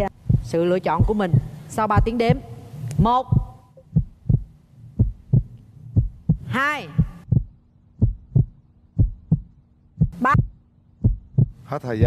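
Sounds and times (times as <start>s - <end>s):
heartbeat double thumps: 0.0s - 11.6s
faint steady hum: 0.0s - 12.0s.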